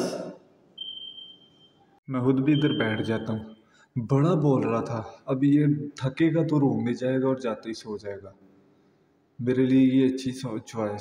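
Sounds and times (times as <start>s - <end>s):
man speaking: 2.1s - 8.4s, 9.4s - 11.0s.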